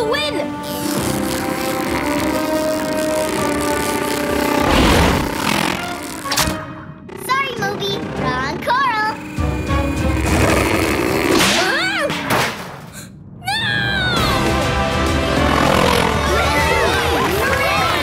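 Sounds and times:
cartoon underscore music: 0:00.0 - 0:11.6, 0:13.8 - 0:18.0.

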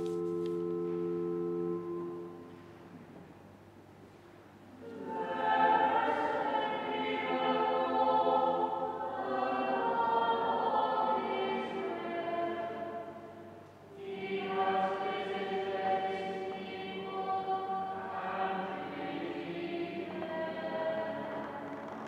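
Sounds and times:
choir singing sustained notes: 0:00.0 - 0:02.6, 0:04.7 - 0:22.0.

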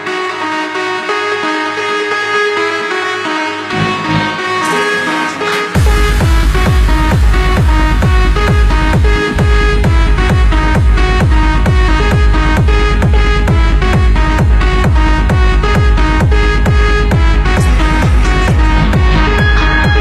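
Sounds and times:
techno kick drum: 0:05.7 - 0:20.0
repeating synth line: 0:15.6 - 0:20.0.

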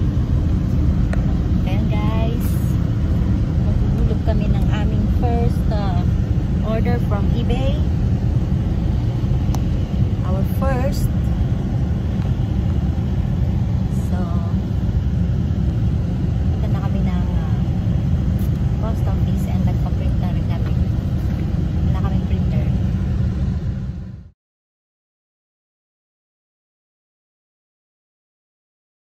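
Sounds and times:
car engine and road noise: 0:00.0 - 0:24.3.

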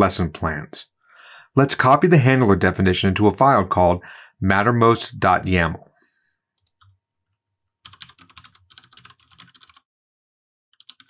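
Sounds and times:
computer keyboard typing: 0:06.6 - 0:07.0, 0:07.8 - 0:09.9, 0:10.8 - 0:11.0.

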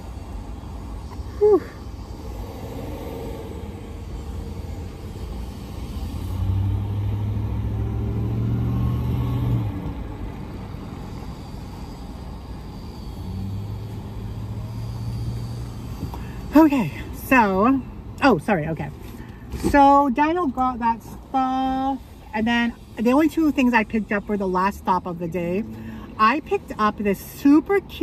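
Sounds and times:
vehicle engine rumble: 0:00.0 - 0:28.0.

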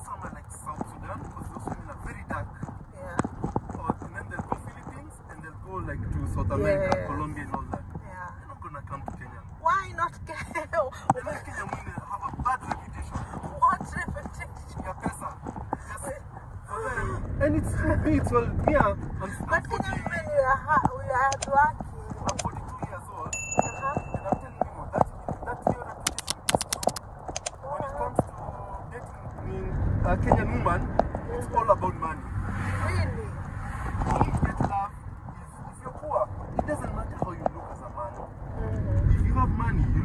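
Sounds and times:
person speaking: 0:23.3 - 0:24.6, 0:26.0 - 0:28.2
sharp clicks and clinks: 0:26.1 - 0:27.5.

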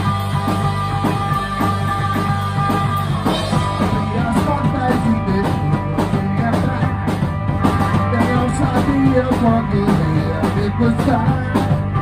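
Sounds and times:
drum kit beat: 0:00.0 - 0:12.0
electric guitars: 0:00.0 - 0:12.0.

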